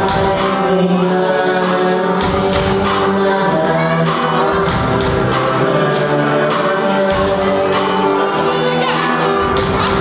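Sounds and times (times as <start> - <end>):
drum kit with cymbal hits: 0.0 - 10.0
lead vocal singing: 0.0 - 10.0
strummed acoustic guitar: 0.0 - 10.0.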